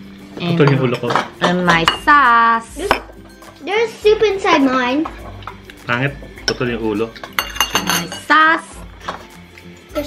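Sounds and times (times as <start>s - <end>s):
utensils clinking on ceramic bowls: 0.4s - 3.6s, 4.4s - 9.4s.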